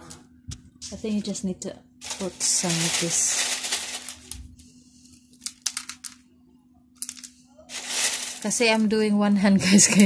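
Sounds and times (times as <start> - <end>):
faint steady hum: 0.0 - 10.0
clay pebbles rattling in plastic: 2.0 - 4.4, 5.4 - 6.2, 7.0 - 9.0.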